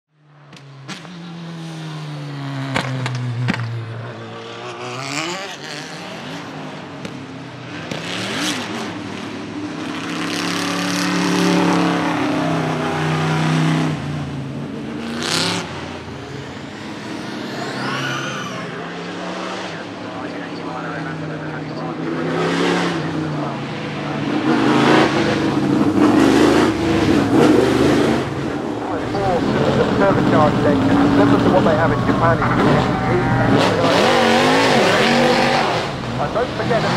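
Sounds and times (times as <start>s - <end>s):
race car engine revving: 0.4s - 36.9s.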